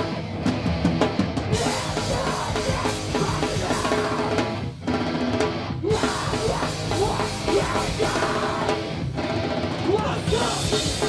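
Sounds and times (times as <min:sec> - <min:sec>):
bass guitar: 0:00.0 - 0:11.0
drums and cymbals: 0:00.0 - 0:11.0
electric guitars: 0:00.0 - 0:11.0
shouted vocal: 0:01.6 - 0:04.3, 0:05.8 - 0:08.8, 0:09.8 - 0:11.0.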